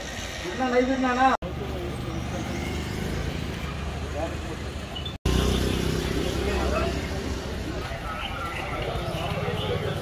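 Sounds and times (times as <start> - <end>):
traffic rumble: 0.0 - 10.0
men talking: 5.8 - 10.0.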